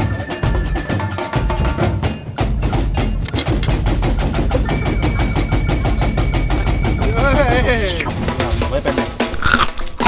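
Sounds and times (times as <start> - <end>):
music with rapid percussion: 0.0 - 10.0.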